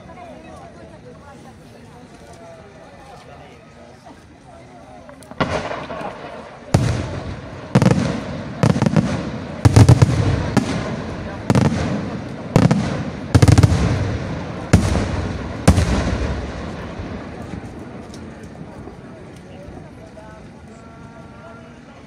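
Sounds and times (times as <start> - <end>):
firework bangs with rumbling echo: 5.4 - 18.0.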